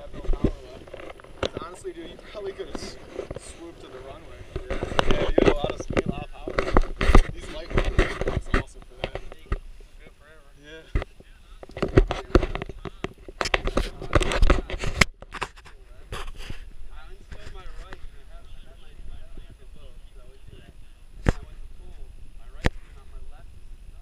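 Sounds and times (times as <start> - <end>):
faint voices: 0.0 - 24.0.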